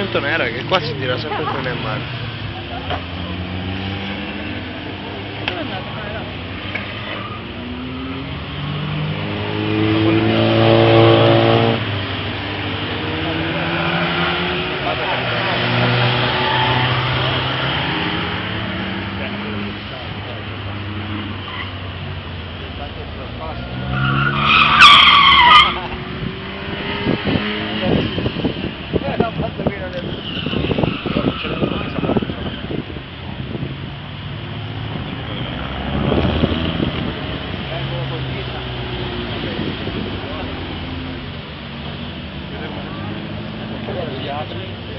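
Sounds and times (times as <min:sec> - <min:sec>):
car engines revving: 0:00.0 - 0:44.9
tyres squealing: 0:23.6 - 0:27.0, 0:30.0 - 0:32.8.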